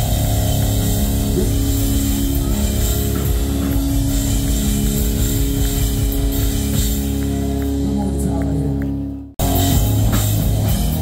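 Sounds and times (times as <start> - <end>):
live rock band playing: 0.0 - 11.0.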